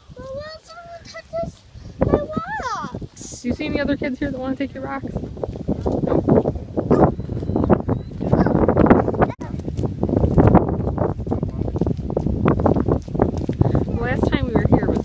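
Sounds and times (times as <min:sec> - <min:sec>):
wind buffeting microphone: 0:00.0 - 0:15.0
footsteps crunching on gravel: 0:08.9 - 0:15.0.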